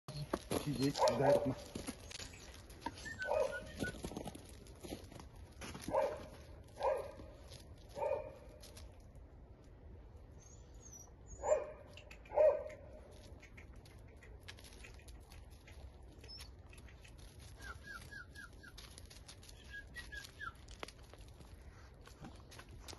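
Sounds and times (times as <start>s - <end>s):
puppies yipping: 0.1s - 4.2s, 10.8s - 21.2s.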